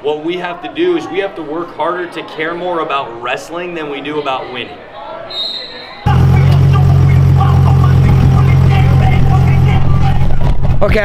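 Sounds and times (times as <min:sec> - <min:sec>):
vehicle engine idling: 0:06.1 - 0:10.1.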